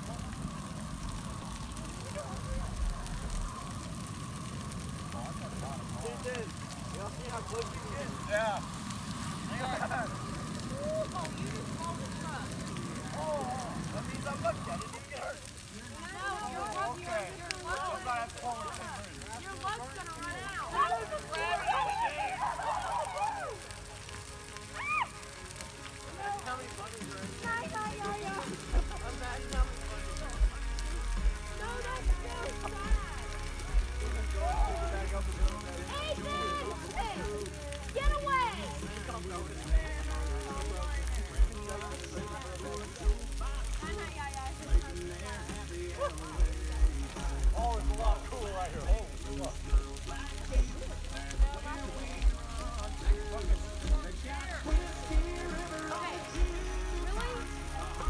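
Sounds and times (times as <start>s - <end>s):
bonfire burning: 0.0s - 58.0s
people's voices: 0.0s - 58.0s
music with deep pulsing bass: 28.5s - 58.0s.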